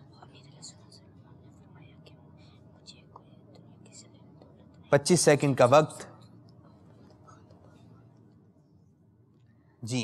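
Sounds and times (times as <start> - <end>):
boys whispering: 0.0 - 5.0.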